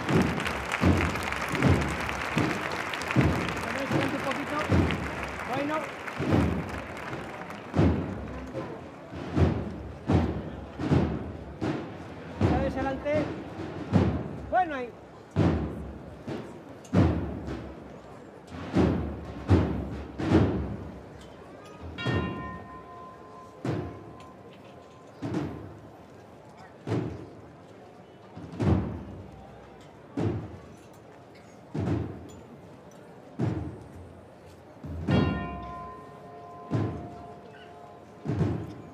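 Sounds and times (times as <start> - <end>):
drum beating slow march: 0.0 - 24.6, 28.4 - 30.7, 33.4 - 38.9.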